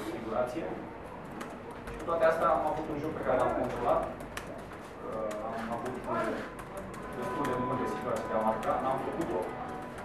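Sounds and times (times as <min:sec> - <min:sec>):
man talking: 0:07.2 - 0:09.6.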